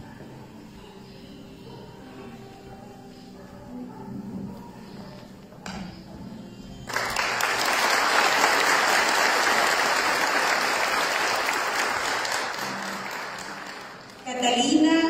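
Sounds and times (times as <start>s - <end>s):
audience applauding: 6.9s - 14.4s.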